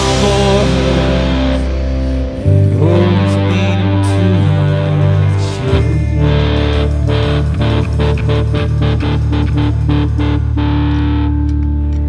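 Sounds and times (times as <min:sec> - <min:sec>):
bass guitar: 0:00.0 - 0:12.0
distorted electric guitar chords: 0:00.0 - 0:12.0.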